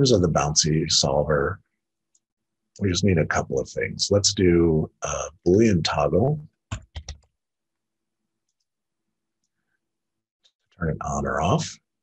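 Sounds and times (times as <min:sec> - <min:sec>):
computer mouse clicks: 0:06.7 - 0:07.3
person speaking: 0:10.7 - 0:11.9.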